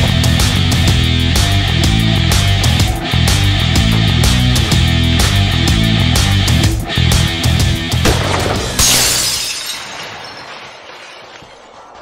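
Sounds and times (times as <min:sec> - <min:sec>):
heavy rock music: 0:00.0 - 0:08.8
glass shattering effect: 0:08.1 - 0:11.8.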